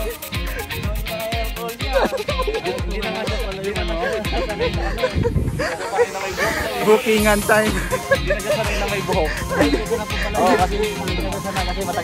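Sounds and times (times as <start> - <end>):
long hiss: 5.6 - 10.4.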